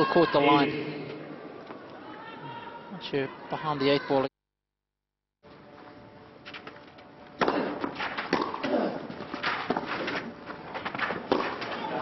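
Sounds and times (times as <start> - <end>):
tennis ball hit by racquets: 7.4 - 12.0.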